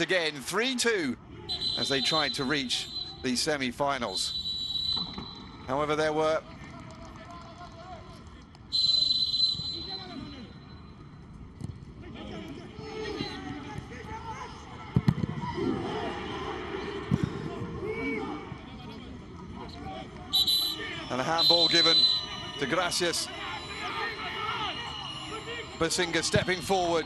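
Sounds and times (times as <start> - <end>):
players shouting: 1.3 - 3.4, 12.0 - 18.7, 19.7 - 27.0
referee's whistle blast: 1.5 - 3.2, 4.2 - 5.7, 8.7 - 10.8, 20.3 - 27.0.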